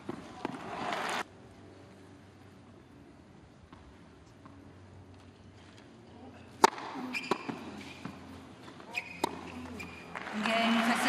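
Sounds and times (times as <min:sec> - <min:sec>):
racket hitting tennis ball: 0:06.5 - 0:11.0
ball bouncing: 0:06.6 - 0:10.6
shoe squeaks on court: 0:07.0 - 0:10.1.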